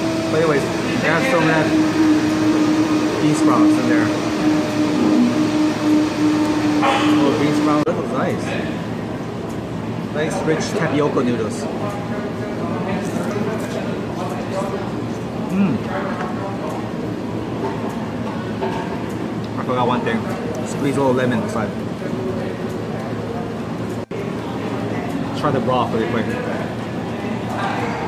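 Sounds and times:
droning machine hum: 0.0 - 28.0
low restaurant rumble: 0.0 - 28.0.

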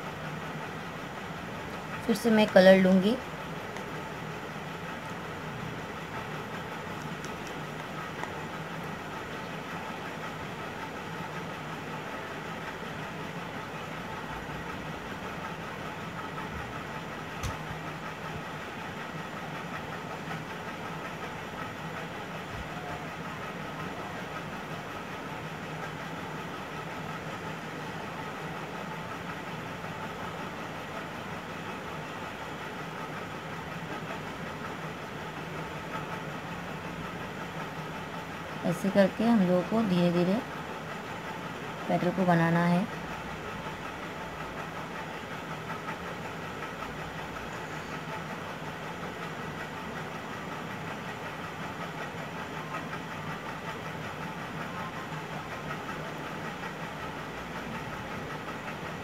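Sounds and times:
machine hum and hiss: 0.0 - 59.0.

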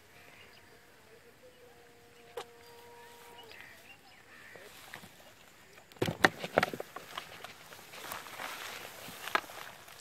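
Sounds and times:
footsteps rustling through grass: 2.7 - 5.7, 6.4 - 10.0.

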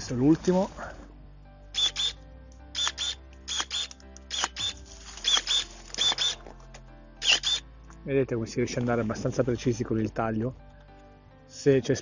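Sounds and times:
faint background music: 0.0 - 12.0
electric pruning shears cutting twigs: 1.8 - 2.2, 2.8 - 6.5, 7.2 - 7.6.

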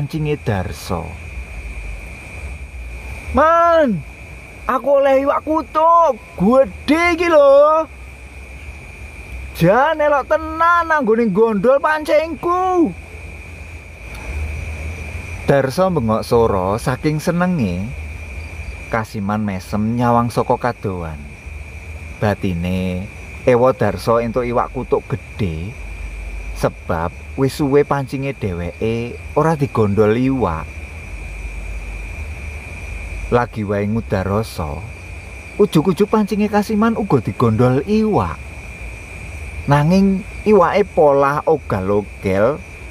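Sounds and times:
insect trill: 0.0 - 42.9
steady low rumble: 0.0 - 42.9
thin high-pitched whine: 0.0 - 42.9.

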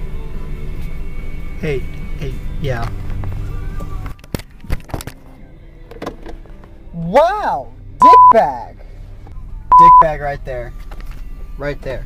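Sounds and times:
music in a car: 0.0 - 12.0.

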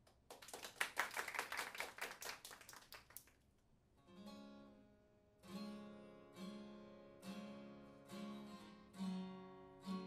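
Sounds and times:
small audience clapping: 0.0 - 3.5.

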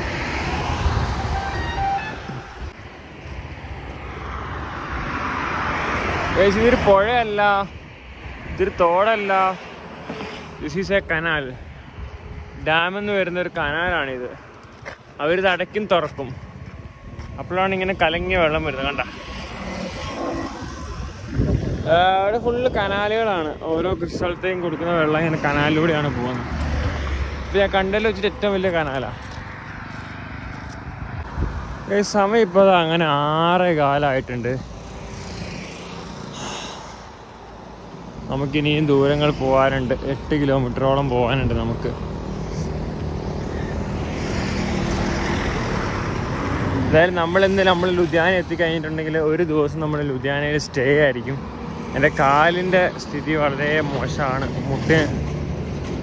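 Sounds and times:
vehicle passing: 0.0 - 7.6, 8.3 - 56.0.

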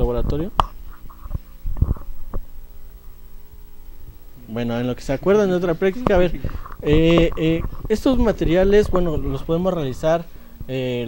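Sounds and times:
microphone handling thumps: 0.0 - 4.5, 5.2 - 10.8.

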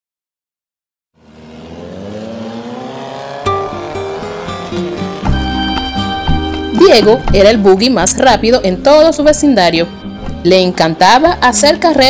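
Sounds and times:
car engine revving: 1.2 - 7.6
light music: 3.2 - 12.0.

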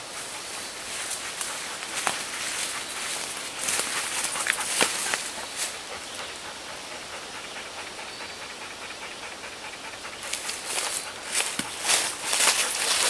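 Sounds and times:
footsteps through leafy undergrowth: 0.0 - 5.8, 10.3 - 13.0
steady hiss: 0.0 - 13.0.

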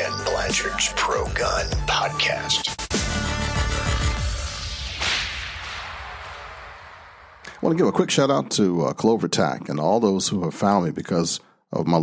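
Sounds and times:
music jingle: 0.0 - 4.2
whip-crack sound effect: 4.4 - 7.6.

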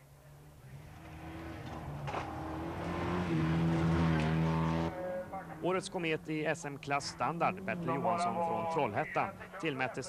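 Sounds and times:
rally car engine at high revs: 0.7 - 5.1, 7.0 - 8.7.

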